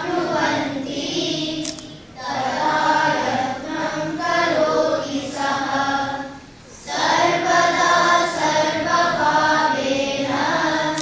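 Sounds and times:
children chanting in unison: 0.0s - 11.0s.

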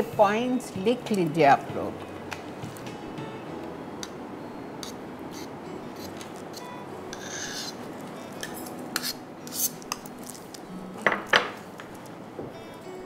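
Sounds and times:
utensils and dishes clinking: 6.0s - 10.4s.

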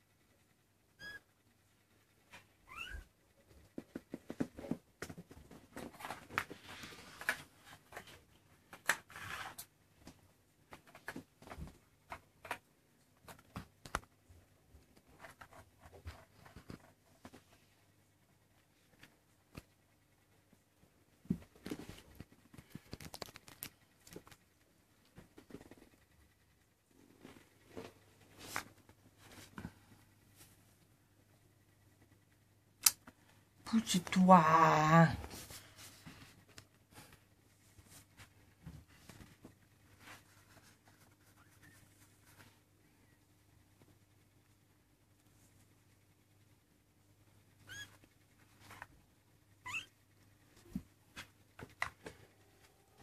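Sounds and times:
kittens rustling on a towel: 13.0s - 26.3s, 26.9s - 30.9s, 35.2s - 42.8s.

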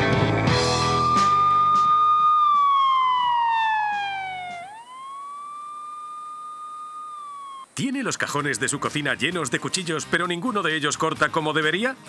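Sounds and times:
backing music: 0.0s - 4.8s
sliding electronic tone: 0.8s - 7.8s.

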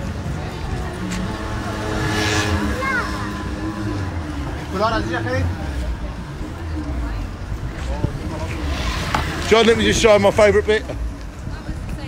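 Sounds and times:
passers-by talking: 0.0s - 12.0s
road traffic rumble: 0.0s - 12.0s.

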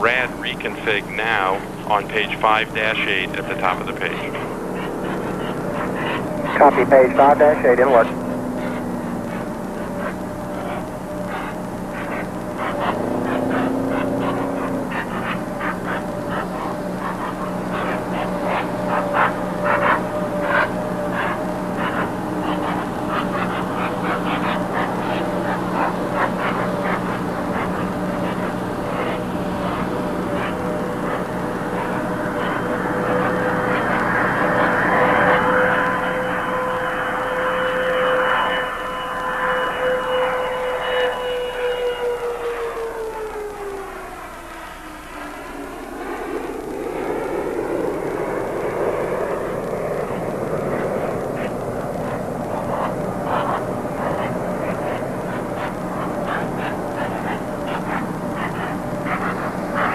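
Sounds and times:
jet aircraft passing overhead: 0.0s - 59.9s.

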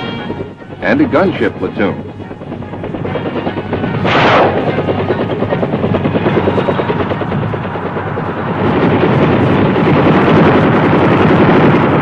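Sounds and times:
helicopter rotor beating: 0.0s - 12.0s.

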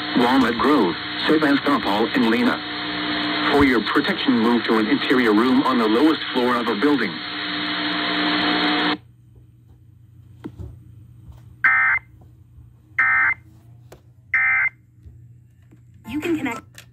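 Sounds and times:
broadcast audio: 0.0s - 9.0s, 16.0s - 16.9s.

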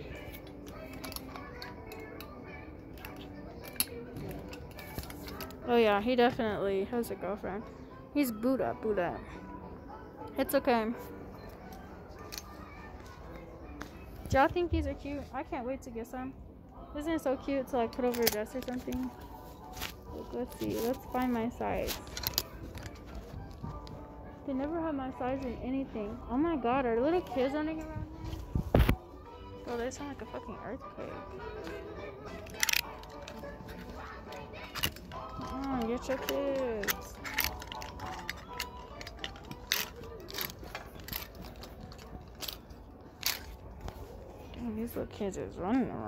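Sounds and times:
faint background music: 0.0s - 46.0s
hangers clicking on metal rack: 34.2s - 43.6s.

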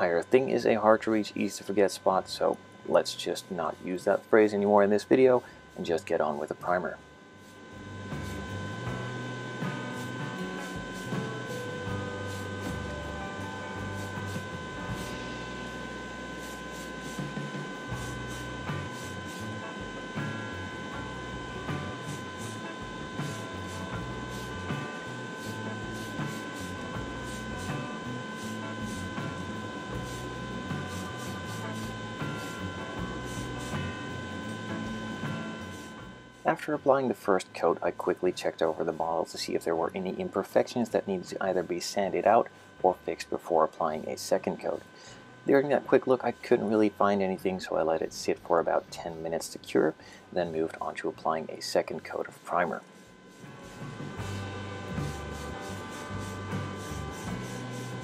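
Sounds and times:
extraction fan humming: 0.0s - 58.0s
background music: 8.0s - 36.2s
aerosol can spraying hiss: 9.6s - 13.0s, 13.8s - 15.2s, 16.4s - 19.6s, 22.0s - 22.6s, 23.2s - 29.4s, 30.0s - 35.0s, 53.3s - 58.0s.

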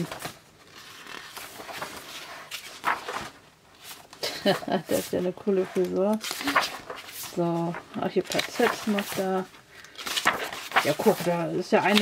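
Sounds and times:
paper pages turning: 0.0s - 12.0s.

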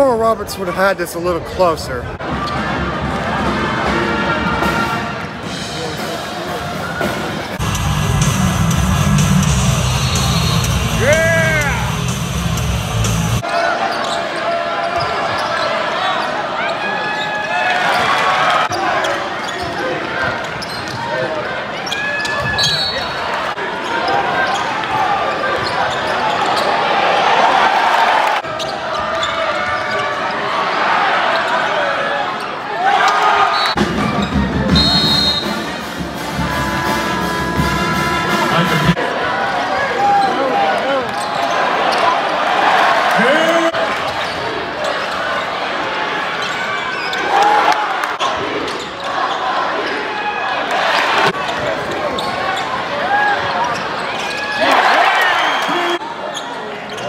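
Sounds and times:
crowd chatter: 0.0s - 57.0s
bass-heavy music: 7.6s - 13.4s.

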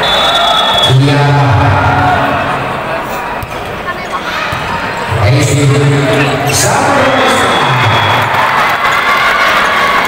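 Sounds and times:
crowd din: 0.9s - 10.0s.

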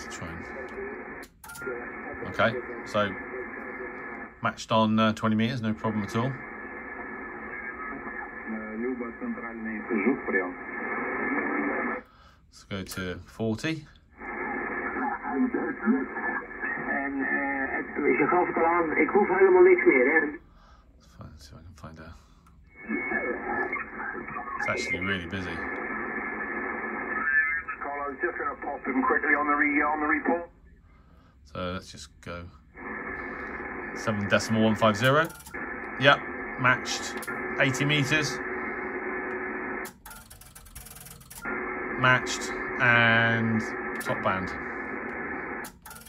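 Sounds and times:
radio voice from speaker: 0.0s - 12.0s, 14.2s - 20.4s, 22.7s - 30.5s, 32.8s - 39.6s, 41.5s - 45.6s
faint radio hiss: 0.0s - 40.0s, 40.9s - 46.0s.

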